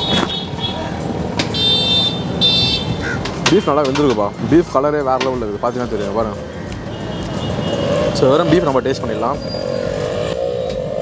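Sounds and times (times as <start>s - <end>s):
high-pitched vehicle horn beeping: 0.0s - 3.9s, 6.9s - 8.6s
street traffic: 0.0s - 11.0s.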